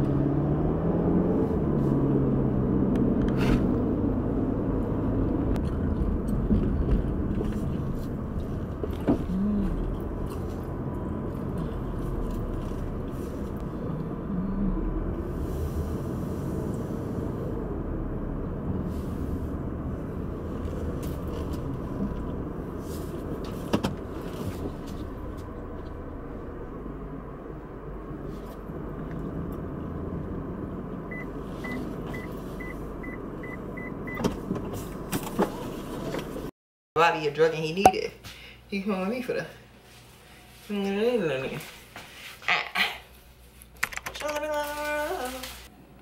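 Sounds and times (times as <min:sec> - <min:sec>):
engine and road rumble: 0:00.0 - 0:42.4.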